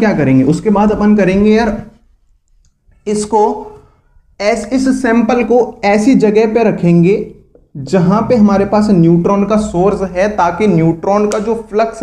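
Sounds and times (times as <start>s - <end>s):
man speaking: 0.0s - 2.0s, 3.0s - 3.8s, 4.4s - 12.0s.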